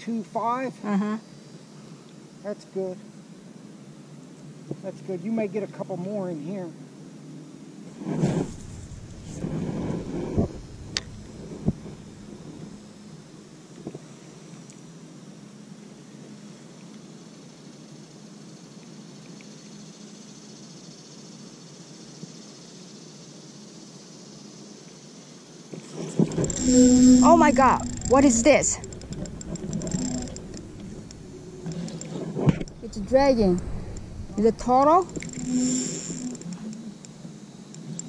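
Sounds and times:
rustling: 8.0s - 12.8s
fishing reel whirring: 8.4s - 12.9s, 26.1s - 37.1s
sharp clicks: 8.6s - 12.7s, 26.2s - 38.0s.

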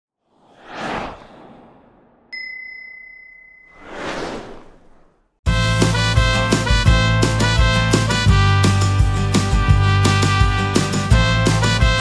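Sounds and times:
whoosh: 0.2s - 2.4s, 3.6s - 5.4s
bright ding: 2.4s - 3.8s.

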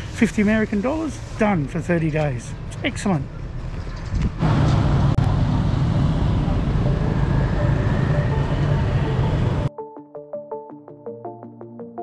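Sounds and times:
traffic engine rumble: 0.0s - 9.7s
plucked keyboard background music: 6.6s - 12.0s.

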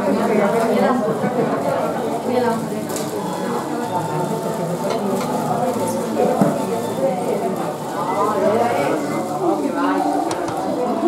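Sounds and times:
babble of overlapping voices: 0.0s - 11.0s.

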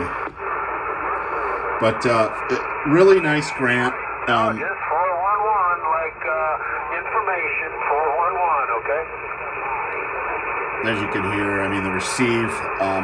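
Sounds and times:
radio hiss: 0.0s - 13.0s
radio speech: 0.0s - 13.0s.

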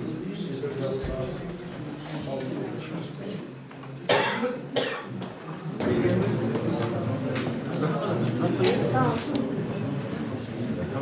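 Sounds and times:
person coughing: 4.1s - 5.1s.

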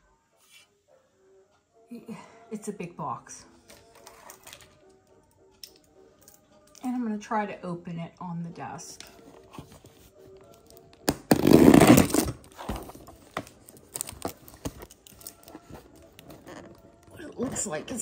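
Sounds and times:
fingers scratching tape: 11.1s - 12.5s, 16.2s - 16.8s
taped box scraping rustle: 11.3s - 13.3s.

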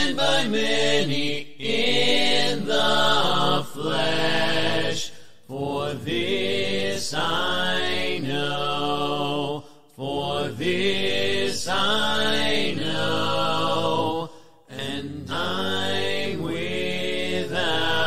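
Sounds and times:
a cappella hymn singing: 0.0s - 18.0s.

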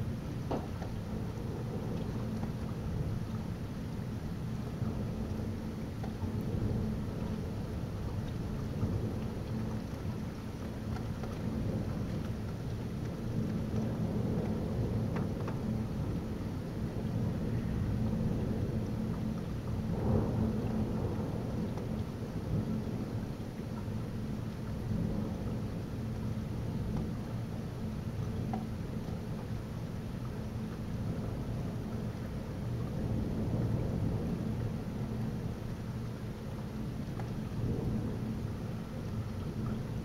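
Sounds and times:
heavy rain: 0.0s - 40.0s
raindrops ticking on window glass: 0.2s - 40.0s
rolling thunder: 13.0s - 24.1s, 31.0s - 36.6s, 37.3s - 40.0s.

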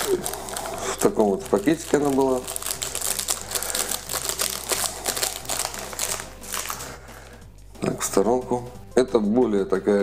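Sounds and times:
plastic sleeve crinkling: 0.0s - 7.4s.

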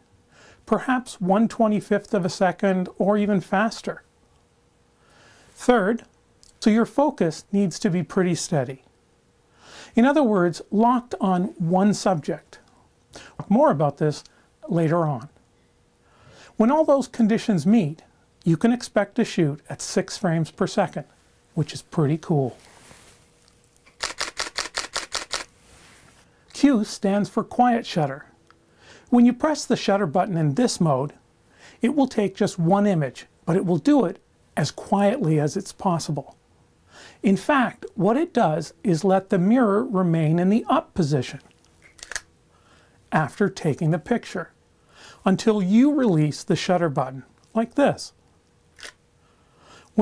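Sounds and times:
camera shutter burst clicks: 23.9s - 25.5s, 41.8s - 42.3s.

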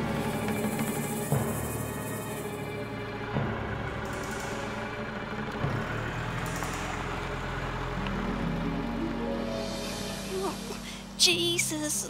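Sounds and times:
minivan driving past: 0.0s - 11.2s
background music: 0.0s - 12.0s.

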